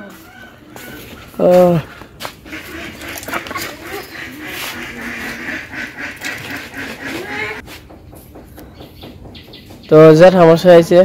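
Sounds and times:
ducks quacking: 0.1 - 7.6.

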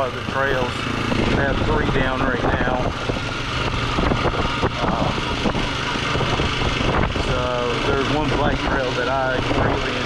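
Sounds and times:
atv engine running: 0.0 - 10.0.

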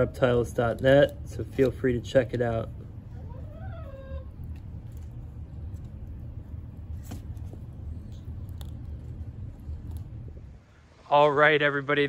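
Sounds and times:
tortoises crunching cactus: 0.0 - 10.7
low steady rumble: 0.0 - 12.0.

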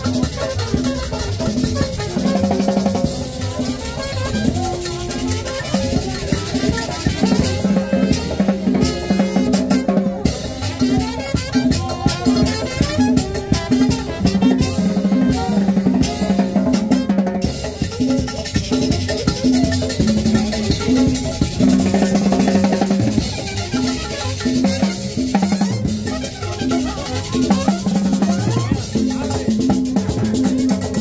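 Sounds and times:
drum kit and percussion beat: 0.0 - 31.0.

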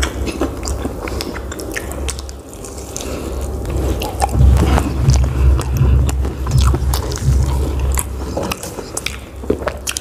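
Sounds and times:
close chewing with mouth clicks: 0.0 - 10.0.

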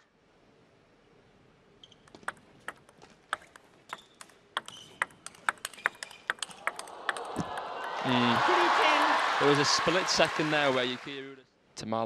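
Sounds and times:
ping pong ball clicking: 2.1 - 7.6
crowd applause and cheering: 6.3 - 11.3.

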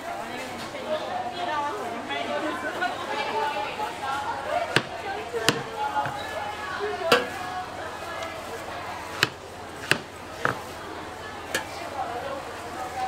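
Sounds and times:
background chatter: 0.0 - 13.0
knife cutting watermelon: 4.6 - 6.3, 9.0 - 10.7
knife knocking on cutting board: 4.8 - 6.2, 9.2 - 10.6.

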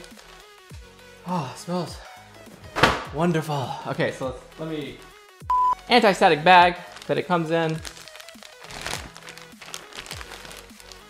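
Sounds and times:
quiet background music: 0.0 - 11.0
plastic bag crinkling: 6.8 - 11.0.

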